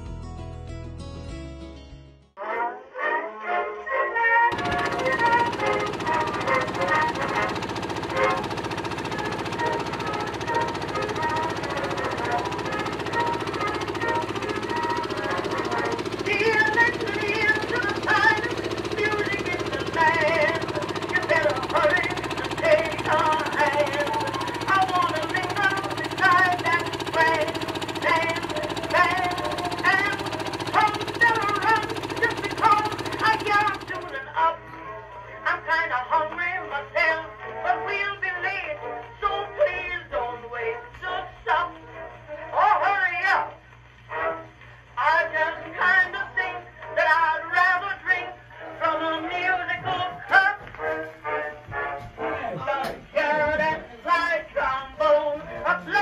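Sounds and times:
electric boat motor hum: 0:04.5 - 0:34.3.

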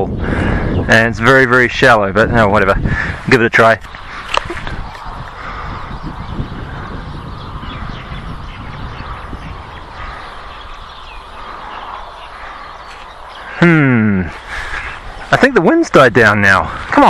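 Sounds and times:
wind on microphone: 0:00.0 - 0:17.0.

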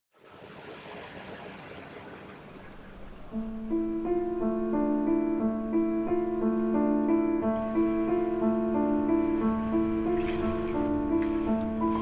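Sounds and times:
piano notes: 0:02.8 - 0:12.0.

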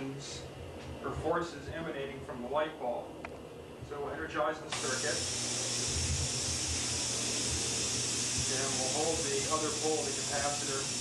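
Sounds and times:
low uneven hum: 0:00.0 - 0:11.0
high-pitched hiss: 0:04.7 - 0:11.0.

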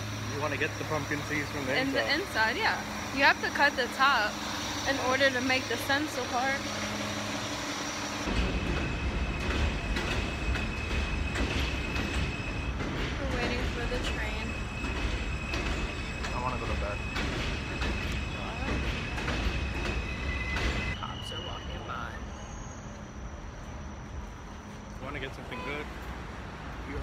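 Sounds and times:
wheels clicking on rails: 0:00.0 - 0:21.0
high-pitched whine: 0:00.0 - 0:25.5
subway train rumble: 0:00.0 - 0:27.0.

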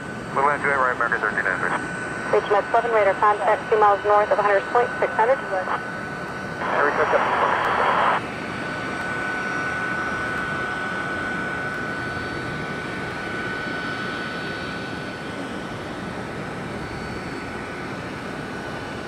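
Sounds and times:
jet engines running: 0:00.0 - 0:19.0
radio static burst: 0:06.6 - 0:08.2.

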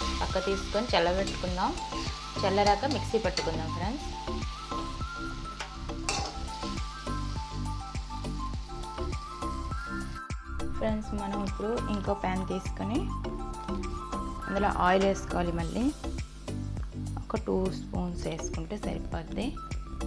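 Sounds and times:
light sizzle: 0:00.0 - 0:20.0
metal spatula scraping a pan: 0:06.0 - 0:06.6.

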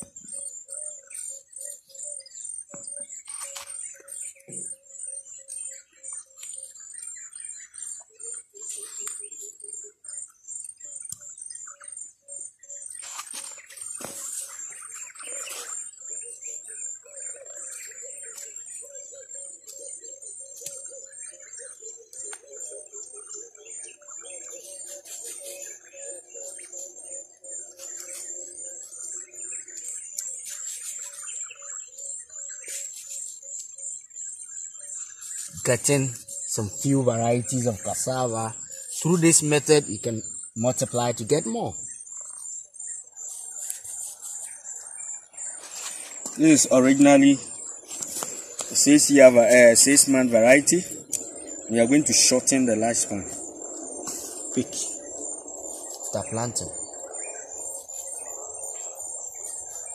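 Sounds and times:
high-pitched chirping: 0:00.0 - 0:59.9.

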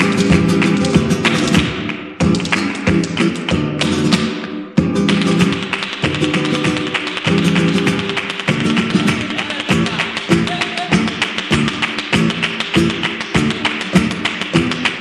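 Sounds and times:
rapid percussive foot taps: 0:00.0 - 0:15.0
spanish guitar chords: 0:00.0 - 0:15.0.

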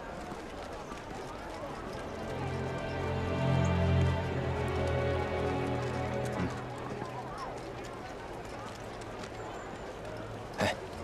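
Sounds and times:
soundtrack music with low held notes: 0:01.7 - 0:08.2.

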